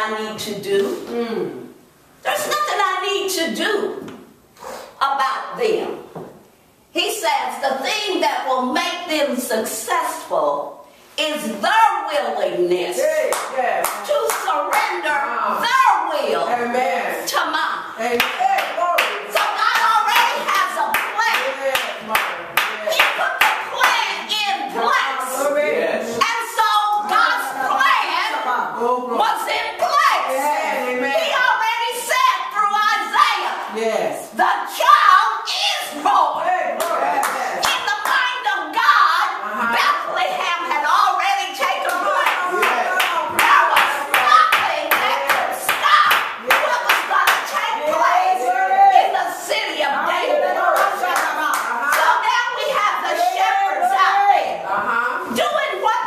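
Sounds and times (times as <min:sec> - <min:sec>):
rhythmic hand clapping: 0:18.1 - 0:24.2, 0:41.8 - 0:48.2, 0:50.7 - 0:52.2.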